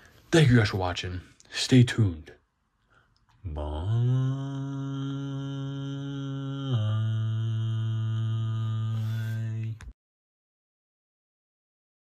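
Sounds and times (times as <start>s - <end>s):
low chant-like droning note: 3.5s - 9.8s.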